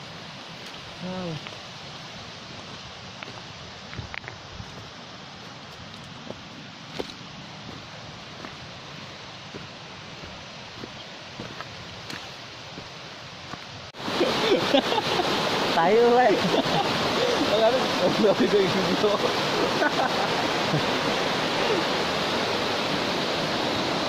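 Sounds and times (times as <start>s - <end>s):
wind and foliage hiss: 0.0s - 24.0s
footsteps on a stony trail: 2.6s - 13.8s.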